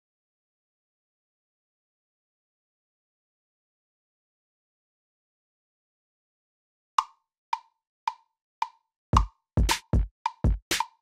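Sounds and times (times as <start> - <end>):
metronome clicks: 10.3 - 11.0.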